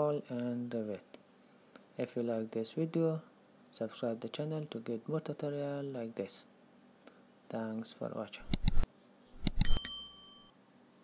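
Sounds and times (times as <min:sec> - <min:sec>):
mouse clicks: 0:08.4 - 0:09.8
bright bell ding: 0:09.4 - 0:10.5.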